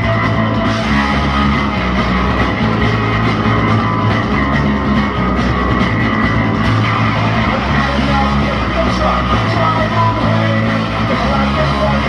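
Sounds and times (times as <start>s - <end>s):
drum kit: 0.0s - 12.0s
electric bass: 0.0s - 12.0s
electric guitars: 0.0s - 12.0s.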